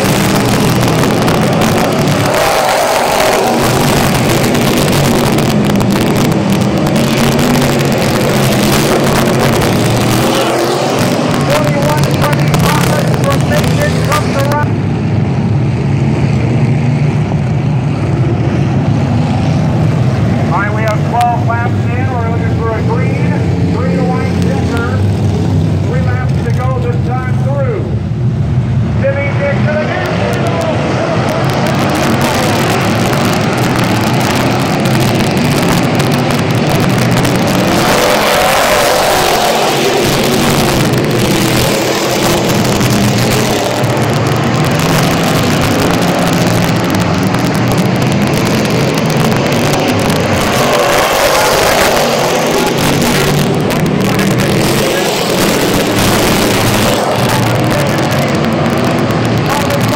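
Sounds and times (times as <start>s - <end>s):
indistinct voices: 0.0s - 14.7s, 19.4s - 28.0s, 28.8s - 59.9s
race car engines droning: 0.0s - 59.9s.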